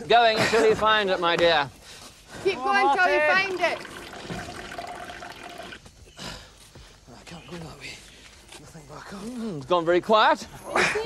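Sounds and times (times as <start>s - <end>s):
liquid pouring into a jug: 3.3s - 5.8s.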